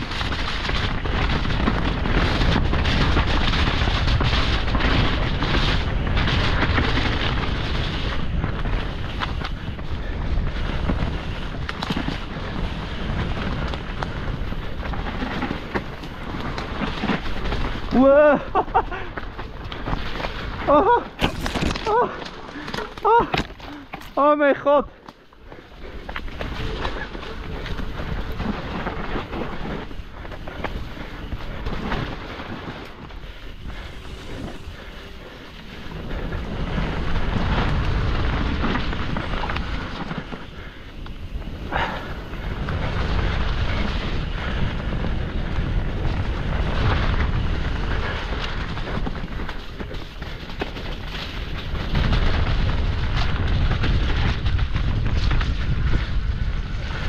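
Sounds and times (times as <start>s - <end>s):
wind buffeting microphone: 0.0s - 24.1s, 24.8s - 57.0s
bike rattling over bumps: 0.0s - 57.0s
tyres on dirt trail: 0.0s - 57.0s.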